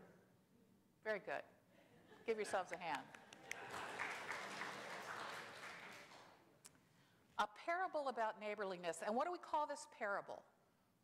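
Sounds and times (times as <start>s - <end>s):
congregation applauding: 3.2s - 6.4s.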